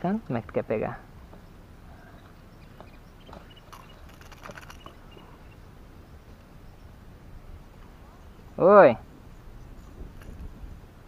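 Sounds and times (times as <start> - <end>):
clicks and knocks handling fish: 2.8 - 5.0.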